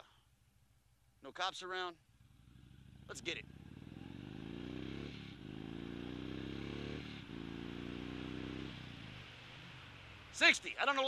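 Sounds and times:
motorcycle engine accelerating: 2.0 - 10.4.

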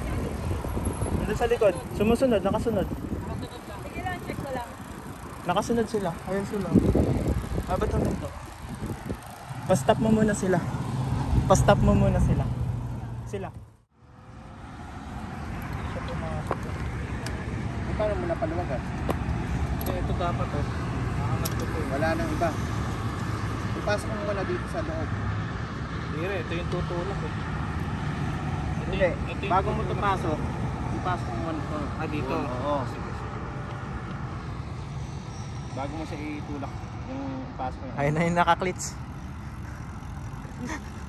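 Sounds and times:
road and wind noise: 0.0 - 41.0.

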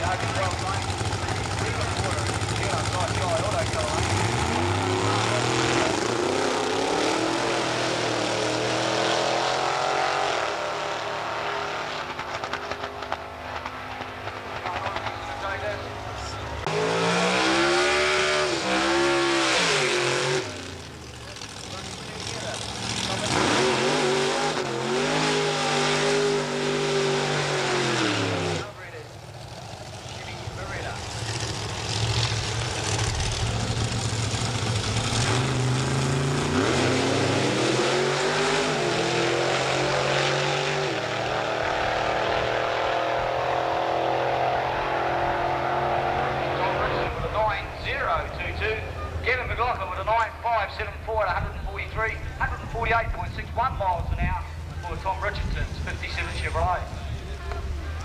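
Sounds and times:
drag racing car engines revving: 0.0 - 58.0.

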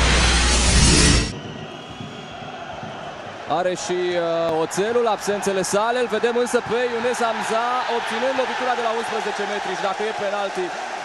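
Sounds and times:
faint stadium crowd: 1.3 - 11.0.

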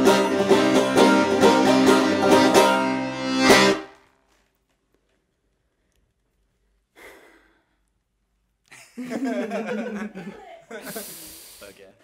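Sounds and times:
person sighing: 7.0 - 7.8.

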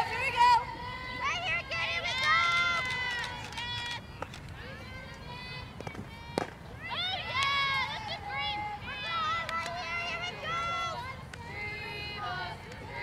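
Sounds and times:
players cheering and chanting: 0.0 - 13.0.

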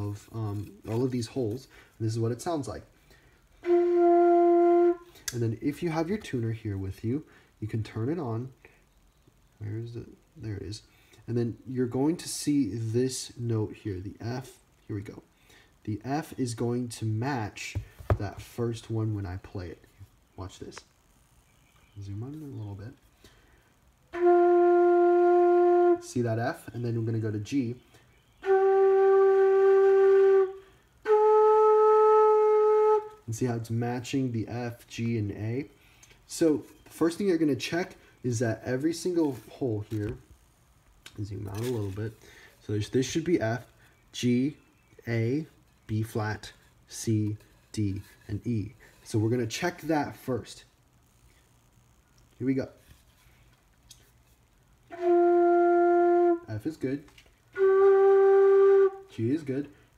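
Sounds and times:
flute playing held notes: 3.6 - 5.1, 24.1 - 26.1, 28.4 - 33.2, 54.9 - 56.6, 57.6 - 59.1.

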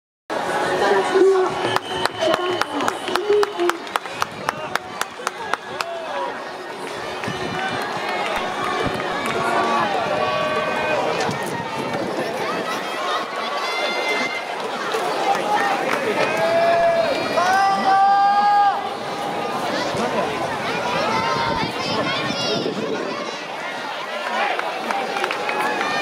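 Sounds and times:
people shouting and calling out: 0.3 - 26.0.

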